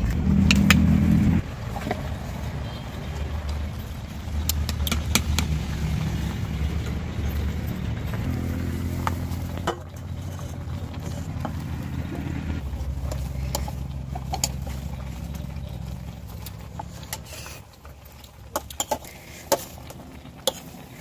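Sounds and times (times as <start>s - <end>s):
low motor hum: 0.0s - 17.3s
plastic ladle scraping clay pot: 4.4s - 21.0s.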